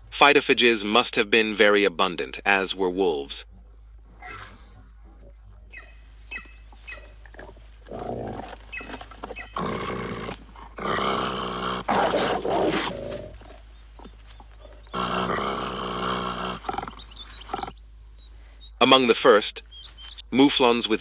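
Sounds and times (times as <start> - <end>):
wolves growling and snarling: 3.5 - 17.8.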